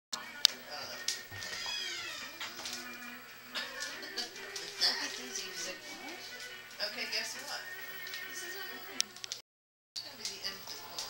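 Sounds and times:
television background music: 0.1 - 9.4, 10.0 - 11.0
television speech: 0.2 - 9.4, 10.0 - 11.0
high-pitched falling cry: 1.6 - 2.4.

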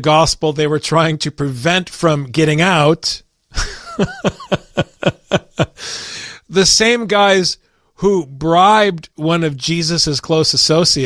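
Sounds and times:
man chuckling: 3.5 - 6.0
long breath out: 5.8 - 6.5.

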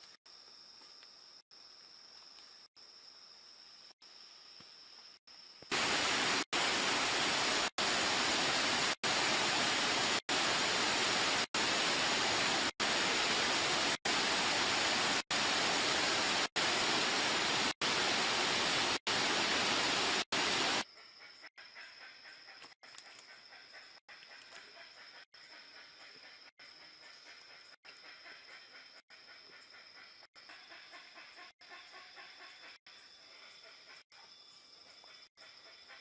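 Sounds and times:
stream rushing over rocks: 5.7 - 20.8.

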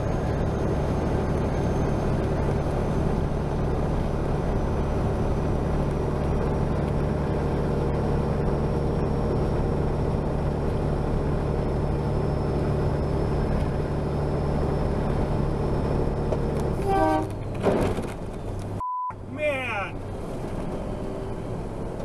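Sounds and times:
diesel engine droning: 0.0 - 22.0
tyre and road noise: 0.0 - 22.0.

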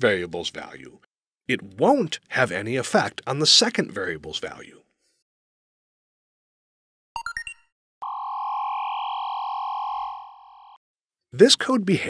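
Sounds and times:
steady synthesized electronic tone: 8.0 - 10.8.

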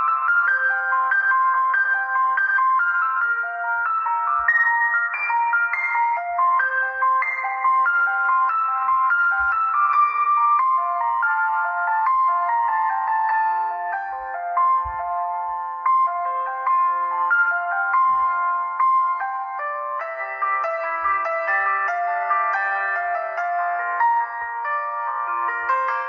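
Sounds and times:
gentle piano melody: 0.0 - 26.0.

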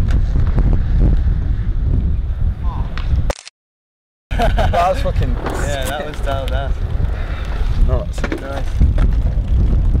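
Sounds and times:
low rumble: 4.6 - 10.0
indistinct voices: 5.0 - 8.2.

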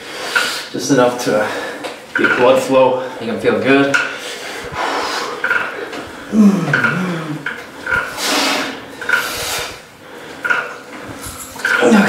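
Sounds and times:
forceful hissing exhales: 4.5 - 5.4, 8.1 - 9.8
man groaning: 6.3 - 7.5.

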